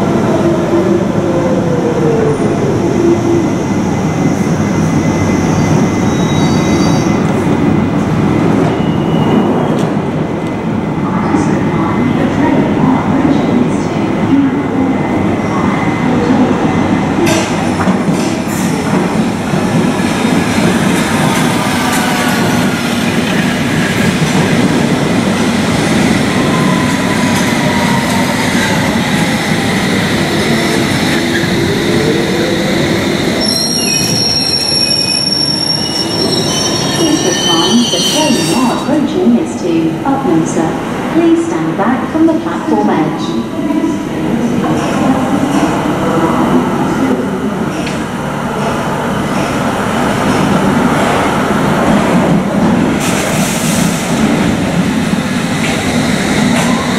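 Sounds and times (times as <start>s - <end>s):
train braking to a stop: 3.4s - 7.5s, 8.4s - 10.1s, 25.6s - 39.0s
high brake squeal: 33.4s - 38.8s.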